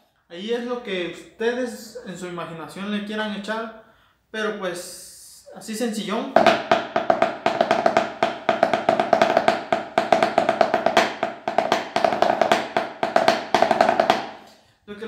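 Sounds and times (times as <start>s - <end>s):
drumsticks playing snare rhythm: 6.3s - 14.5s.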